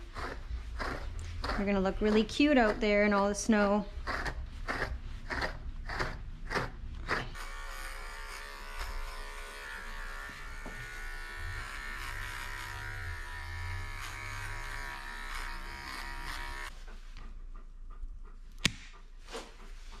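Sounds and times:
pet trimmer buzzing: 0:05.3 - 0:16.7.

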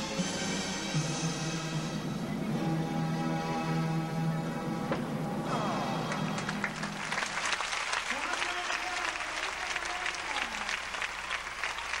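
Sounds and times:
audience clapping: 0:06.0 - 0:12.0.

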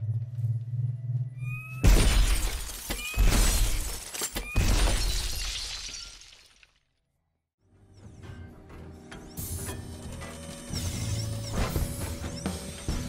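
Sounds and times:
falling glass: 0:01.8 - 0:06.8
glass panes shattering: 0:01.8 - 0:06.8.

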